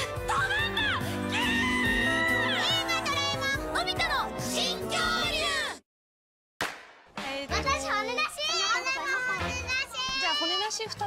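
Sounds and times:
young children's excited voices: 2.2 - 5.8, 7.5 - 10.9.

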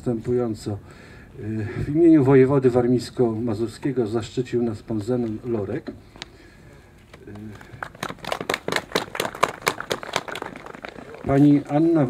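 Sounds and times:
small group clapping: 7.3 - 11.6.

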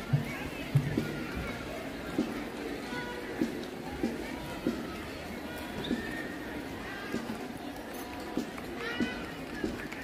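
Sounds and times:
people's voices outdoors: 0.0 - 10.0.

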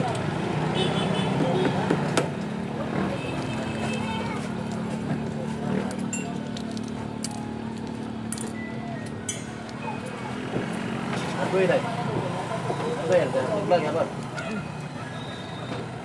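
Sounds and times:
vehicle engine hum: 0.0 - 16.0.

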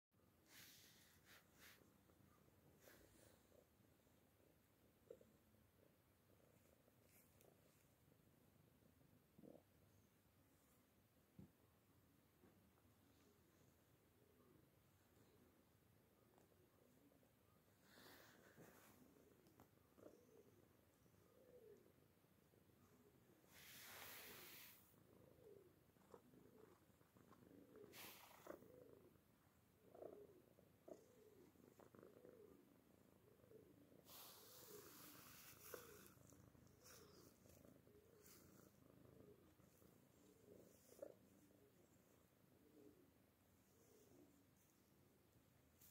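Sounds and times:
cat purring: 0.2 - 45.9
rustling hisses: 23.4 - 25.0, 27.9 - 28.6, 34.0 - 37.5.

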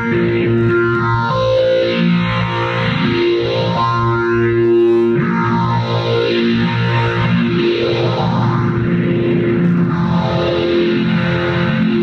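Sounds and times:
electric piano chords with effects: 0.0 - 12.0.

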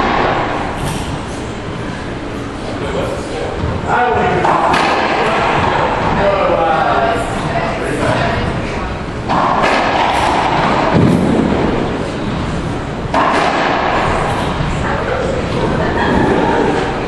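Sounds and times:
racquetball bangs echoing: 0.0 - 1.2, 3.9 - 6.5, 9.2 - 12.4, 13.0 - 14.7.

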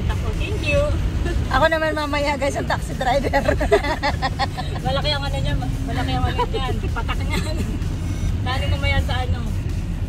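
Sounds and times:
woman speaking: 0.0 - 3.8
car engine and road noise: 0.0 - 10.0.

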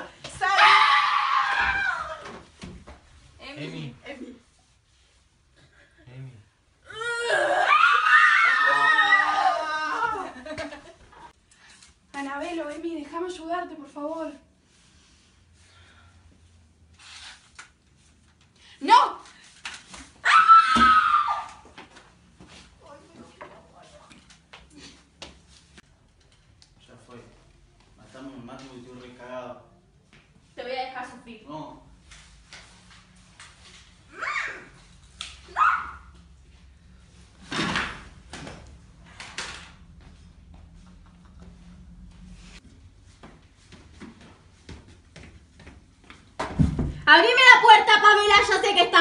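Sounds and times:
person screaming: 6.9 - 10.3
footsteps on tiled floor: 39.9 - 46.9.

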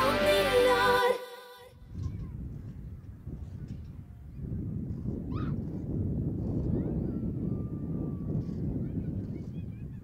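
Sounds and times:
wind buffeting microphone: 1.8 - 10.0.

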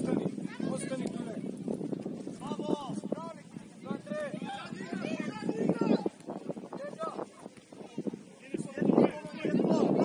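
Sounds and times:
people shouting on football pitch: 3.4 - 10.0.

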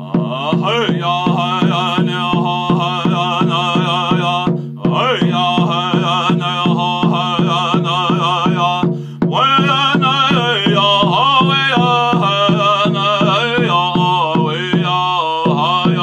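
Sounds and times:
hand drum beat: 0.0 - 16.0
man chanting: 0.0 - 16.0.

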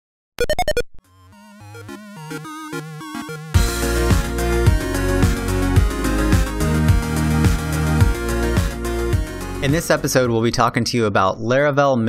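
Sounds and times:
bright electronic blips: 0.4 - 3.6
stepping synth melody: 0.4 - 10.3.

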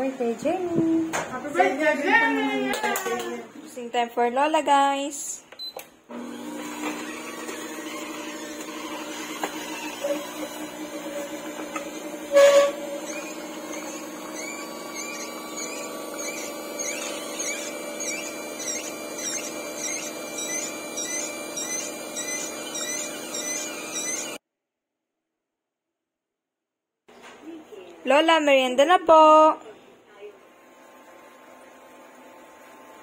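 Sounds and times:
juicer motor hum: 6.1 - 24.4, 30.4 - 33.0
quick repeating high squeak: 12.4 - 24.4.

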